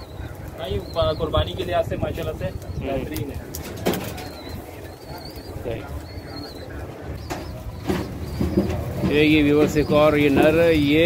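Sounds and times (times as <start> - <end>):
bird calls: 0.0 - 11.0
low speech: 0.1 - 11.0.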